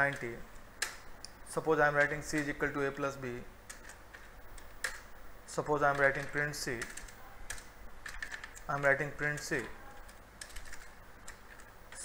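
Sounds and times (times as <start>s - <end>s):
computer keyboard typing: 1.8s - 5.1s, 5.7s - 12.0s.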